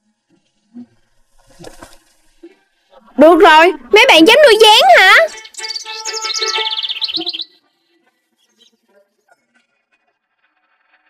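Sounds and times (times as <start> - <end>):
sustained musical tones: 3.3 - 7.8
cartoon chirping trill: 4.6 - 7.5.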